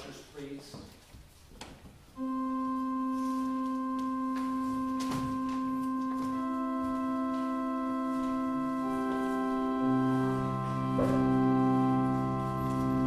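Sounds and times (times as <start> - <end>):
church organ chord: 2.2 - 13.0.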